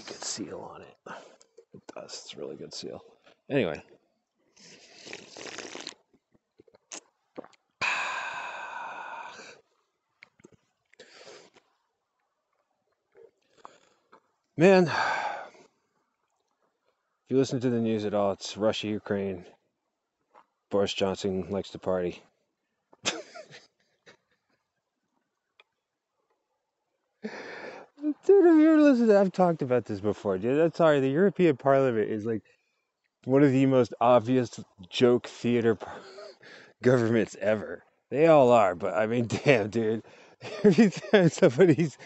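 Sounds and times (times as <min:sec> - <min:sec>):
person slurping coffee: 0:04.7 - 0:06.1
man breathy vocal sound: 0:07.8 - 0:09.6, 0:14.8 - 0:15.6, 0:27.2 - 0:28.1
person sighing: 0:07.8 - 0:09.6, 0:14.8 - 0:15.5, 0:27.2 - 0:28.2.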